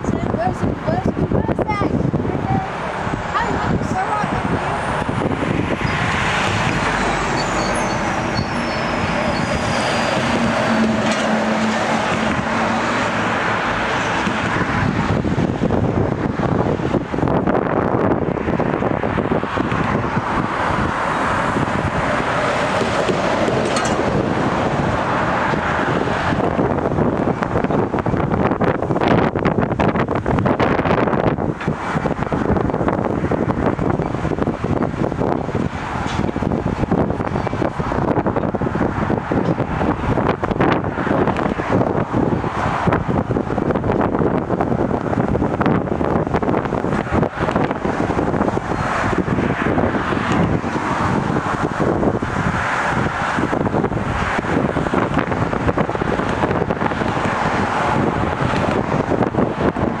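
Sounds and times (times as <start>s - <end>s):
freight train rumble: 0.0s - 60.0s
high squeal falling in pitch: 6.9s - 10.9s.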